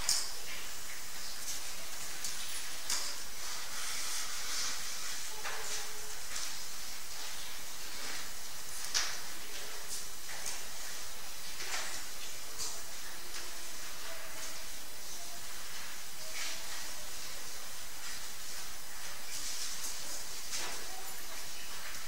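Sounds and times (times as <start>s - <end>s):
microphone hiss: 0.0s - 22.0s.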